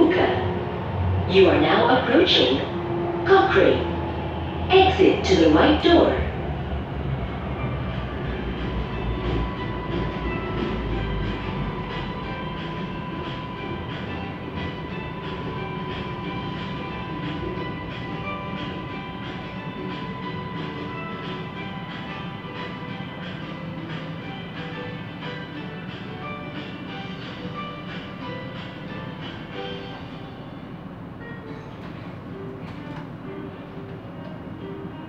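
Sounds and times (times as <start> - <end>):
metro train running: 0.0 - 35.0.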